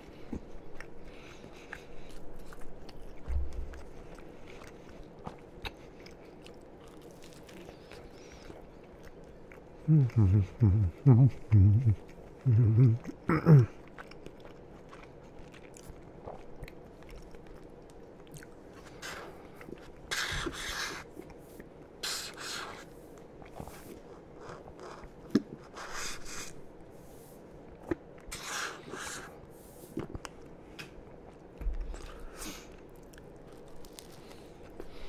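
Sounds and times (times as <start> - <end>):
chewing toasted sandwich: 0.0 - 26.9, 27.5 - 35.0.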